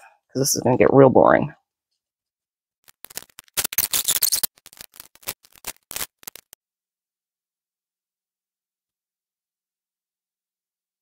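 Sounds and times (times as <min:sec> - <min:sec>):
paper strip rustling and crinkling: 0:02.8 - 0:06.6.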